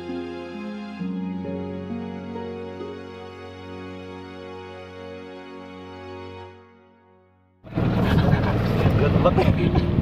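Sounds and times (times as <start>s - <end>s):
background music: 0.0s - 8.0s
small boat motor running: 7.6s - 10.0s.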